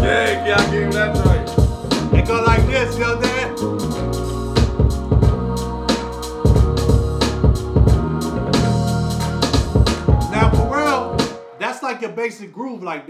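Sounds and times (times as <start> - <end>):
hip-hop beat over speakers: 0.0 - 11.8.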